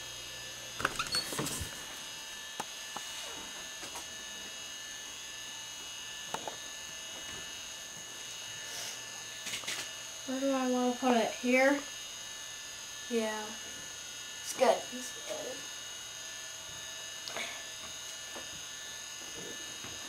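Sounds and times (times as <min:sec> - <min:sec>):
camcorder motor hum and whine: 0:00.0 - 0:20.0.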